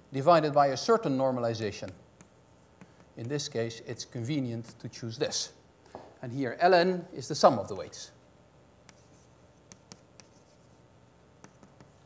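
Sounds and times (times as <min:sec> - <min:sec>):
chalk writing on blackboard: 0:01.8 - 0:03.5, 0:04.6 - 0:04.8, 0:08.9 - 0:12.0.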